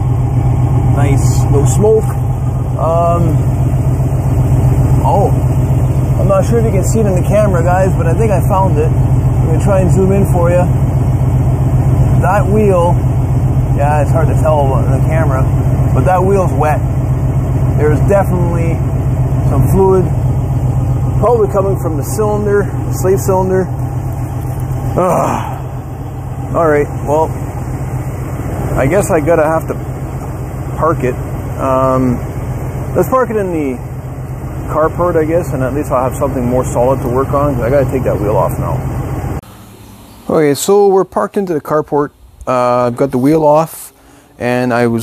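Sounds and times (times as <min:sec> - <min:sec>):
engine idling low rumble: 0:00.0 - 0:45.0
man's brief vocal sound: 0:25.0 - 0:25.8.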